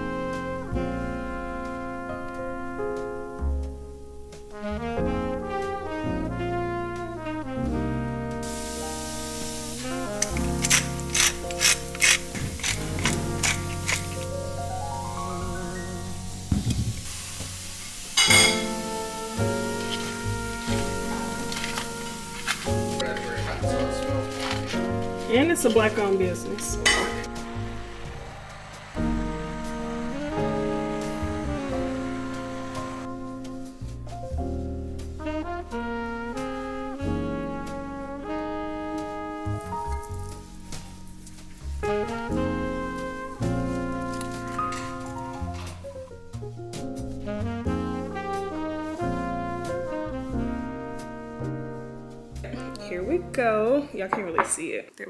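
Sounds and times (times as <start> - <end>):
background music: 0.0 - 54.8
spice grinder clicking: 10.2 - 14.1.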